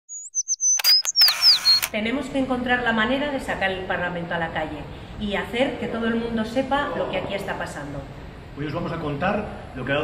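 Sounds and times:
high gliding chirps: 0:00.1 - 0:01.9
shutter-like clicks: 0:00.8 - 0:02.0.

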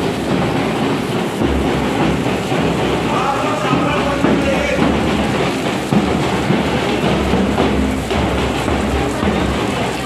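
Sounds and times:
music: 0:00.3 - 0:10.0.

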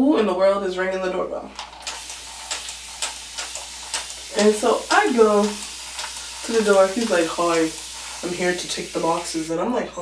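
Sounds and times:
spray bottle spritzing: 0:01.6 - 0:09.6.

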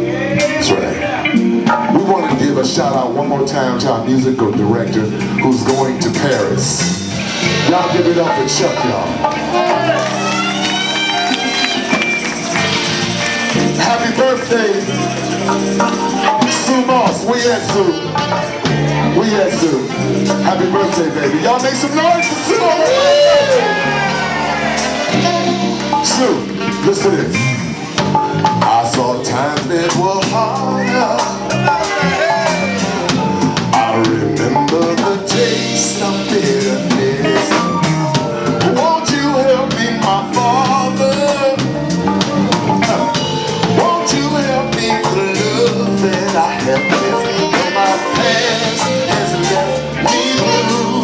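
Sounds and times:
person singing: 0:00.0 - 0:28.0, 0:28.6 - 0:51.0
drums: 0:00.0 - 0:51.0
guitar: 0:00.0 - 0:51.0
organ: 0:00.0 - 0:51.0
hand percussion: 0:09.0 - 0:17.3.

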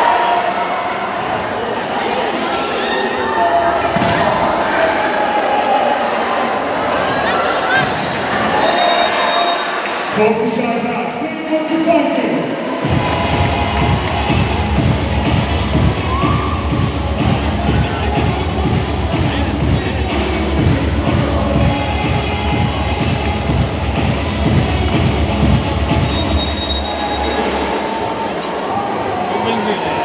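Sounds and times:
arena crowd rumble and banging: 0:00.0 - 0:30.0
short high whistle: 0:08.6 - 0:09.8, 0:26.1 - 0:27.7.

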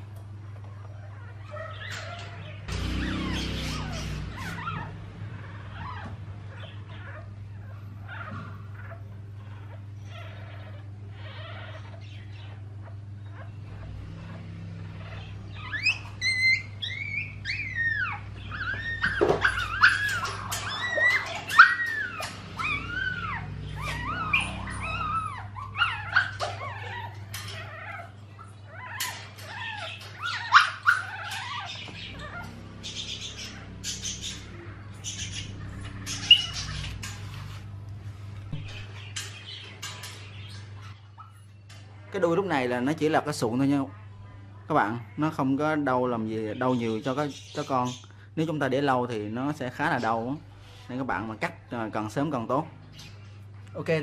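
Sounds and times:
puppy crying in high squeals: 0:01.1 - 0:13.5, 0:15.0 - 0:34.4, 0:35.0 - 0:37.2.

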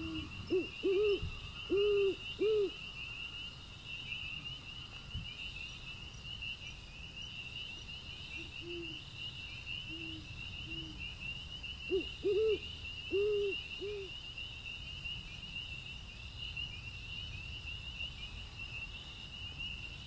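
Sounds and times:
owl hooting: 0:00.0 - 0:02.8, 0:08.6 - 0:09.0, 0:11.9 - 0:14.1
crickets chirping: 0:00.0 - 0:20.0.

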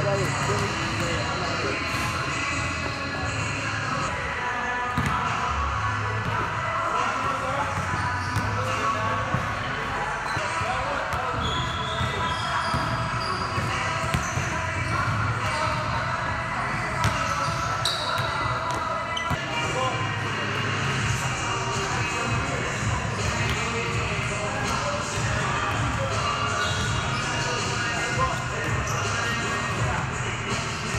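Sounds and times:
background music: 0:00.0 - 0:10.2.

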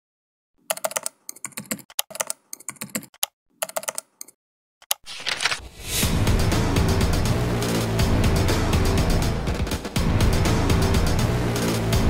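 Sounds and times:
keyboard key clicks: 0:00.7 - 0:05.4.

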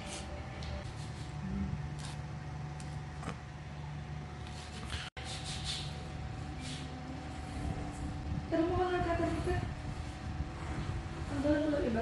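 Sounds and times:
low room hum: 0:00.0 - 0:12.0
woman's voice: 0:08.5 - 0:09.8, 0:11.2 - 0:12.0.

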